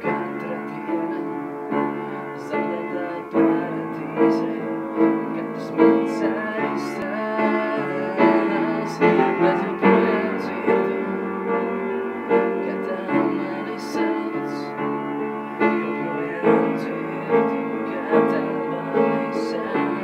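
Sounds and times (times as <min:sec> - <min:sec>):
upright piano playing: 0:00.0 - 0:20.0.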